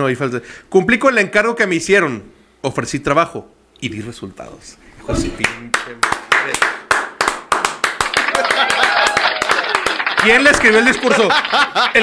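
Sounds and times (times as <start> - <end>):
hand clapping: 5.4 - 12.0.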